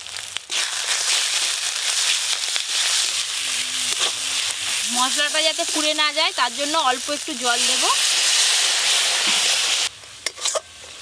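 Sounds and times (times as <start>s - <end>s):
spices sizzling in hot oil: 0.0s - 11.0s.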